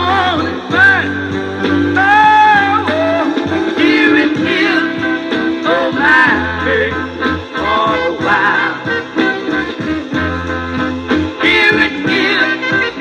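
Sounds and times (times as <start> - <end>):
man singing soul song: 0.0 - 9.3
guitar and band: 0.0 - 13.0.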